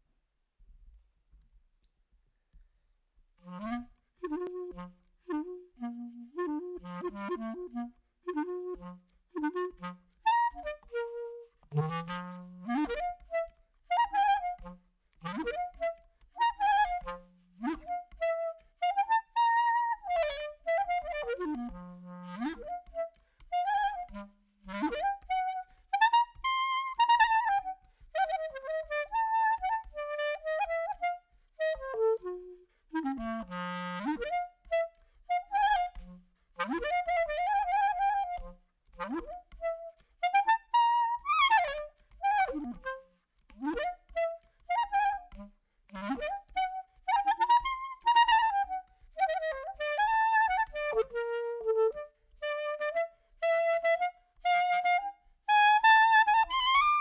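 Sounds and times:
solo clarinet melody: 3.4s - 57.0s.

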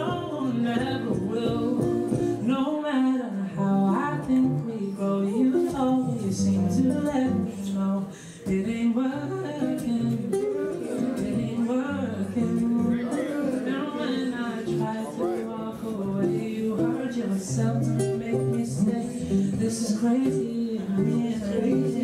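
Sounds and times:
acoustic guitar: 0.0s - 22.0s
man singing: 0.0s - 22.0s.

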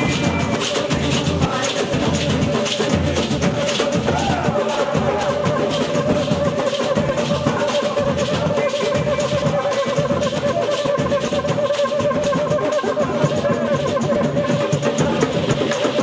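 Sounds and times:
drums and hand percussion: 0.0s - 16.0s.

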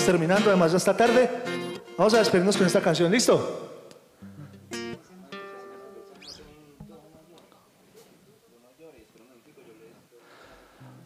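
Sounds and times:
acoustic guitar chord ringing: 0.0s - 3.0s, 4.2s - 7.3s.

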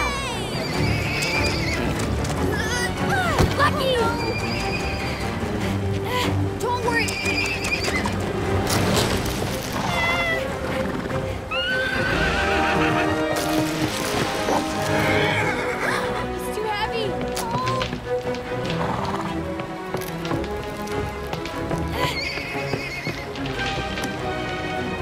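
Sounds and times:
background music: 0.0s - 25.0s
horse whinnying: 0.4s - 2.1s, 4.0s - 5.4s, 7.0s - 8.2s, 9.8s - 13.4s, 14.8s - 16.2s, 21.9s - 23.4s.

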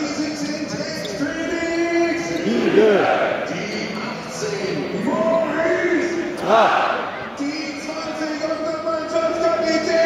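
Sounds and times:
crowd voices: 0.0s - 10.0s
stadium announcer's echoing voice: 0.0s - 10.0s.

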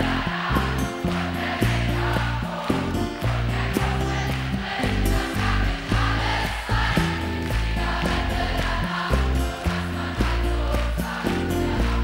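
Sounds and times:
acoustic guitars: 0.0s - 12.0s
held bass notes: 0.0s - 12.0s
large crowd singing along: 0.0s - 12.0s.

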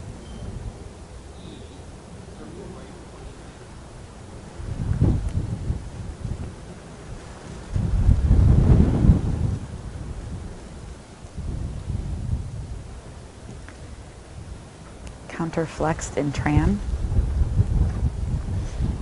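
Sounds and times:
steady low rumble: 0.0s - 19.0s
wind buffeting microphone: 0.0s - 19.0s.

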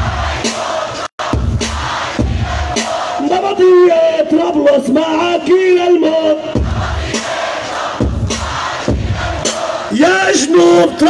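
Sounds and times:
dance music with heavy bass beat: 0.0s - 3.7s
noise of large crowd: 0.0s - 11.0s.

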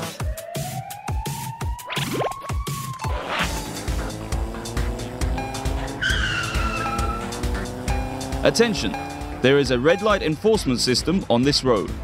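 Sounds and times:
background music with steady beat: 0.0s - 12.0s
tyre squeal sound effect: 6.0s - 7.3s.

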